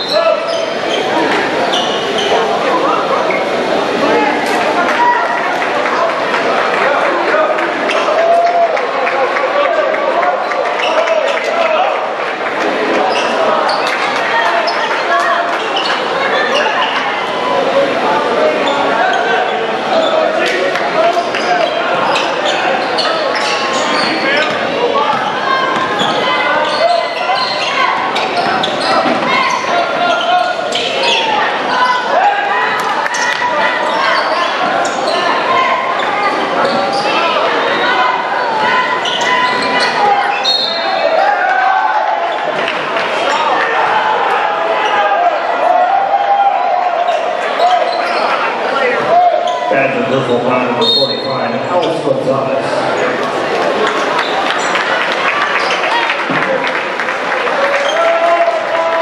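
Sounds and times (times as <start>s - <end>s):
crowd voices echoing: 0.0s - 59.0s
shoe squeaks and knocks: 21.2s - 31.3s, 39.0s - 40.9s.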